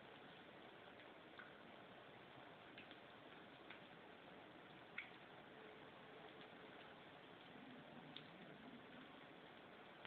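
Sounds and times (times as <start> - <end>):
deep-frying sizzle: 0.0 - 10.0.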